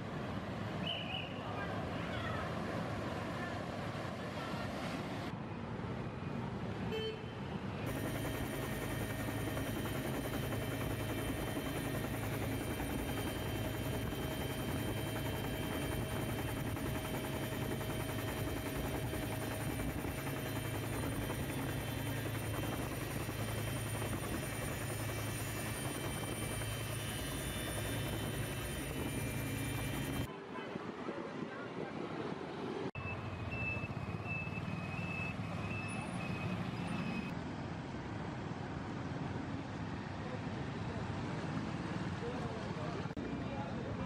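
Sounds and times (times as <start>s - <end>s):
street sound: 0.0s - 44.0s
helicopter rotor and engine noise: 1.4s - 44.0s.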